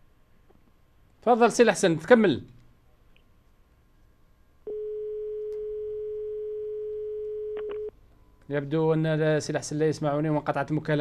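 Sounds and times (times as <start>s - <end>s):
steady telephone line tone: 4.6s - 8.4s.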